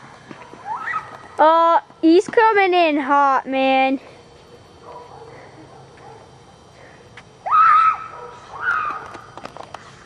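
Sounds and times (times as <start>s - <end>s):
running footsteps on pavement: 0.0s - 2.8s
child screaming: 0.6s - 1.2s, 7.4s - 9.0s.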